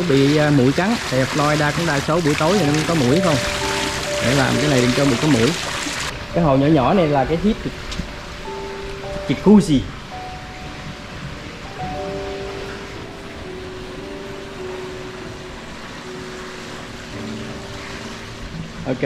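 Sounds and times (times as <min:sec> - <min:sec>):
soft music of held notes: 0:00.0 - 0:19.0
water rushing: 0:00.0 - 0:19.0.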